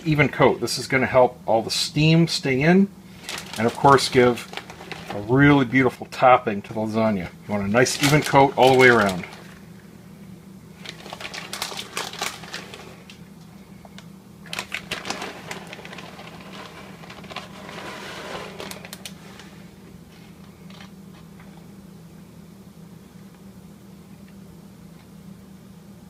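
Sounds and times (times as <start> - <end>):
steady low hum: 0.0 - 26.0
plastic bag crinkling: 3.1 - 5.7, 7.5 - 9.8, 10.8 - 13.2, 14.4 - 19.7.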